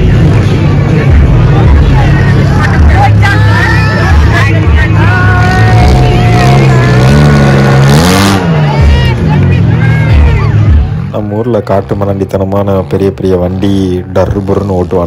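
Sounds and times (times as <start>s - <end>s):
car engines revving: 0.0s - 15.0s
crowd shouting: 2.0s - 11.0s.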